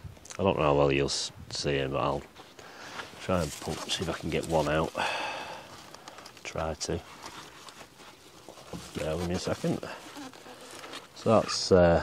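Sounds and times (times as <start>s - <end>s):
onions rustling: 2.4s - 12.0s.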